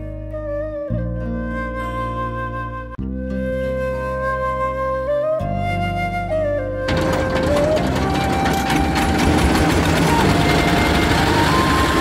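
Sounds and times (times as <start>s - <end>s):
boat engine clattering: 6.9s - 12.0s.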